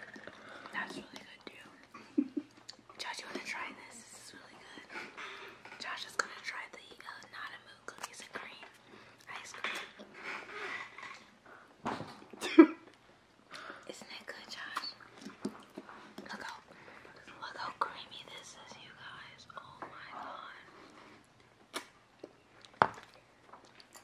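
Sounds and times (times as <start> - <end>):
person whispering: 3.0 - 5.0, 5.8 - 9.7, 13.9 - 15.0, 16.3 - 20.7.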